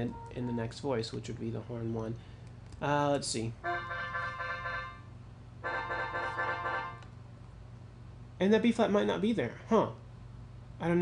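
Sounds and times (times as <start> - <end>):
sustained brass chord: 3.6 - 7.0.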